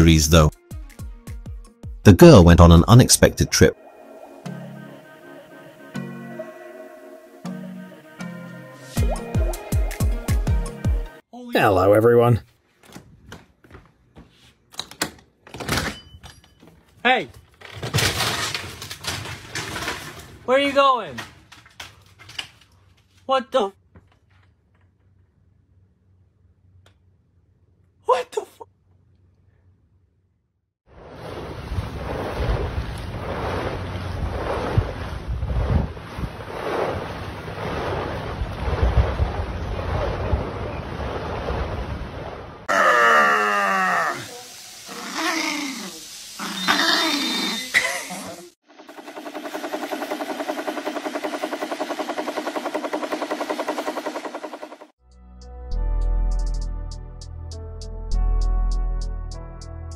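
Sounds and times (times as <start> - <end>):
open sea wash: 3.6 - 8.2, 30.9 - 42.7
wavering animal cry: 44.9 - 48.4.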